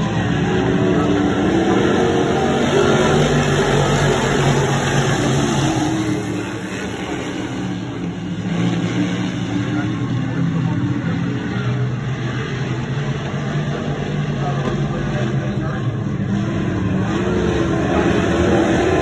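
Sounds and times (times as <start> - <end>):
race car engines running hard: 0.0 - 19.0.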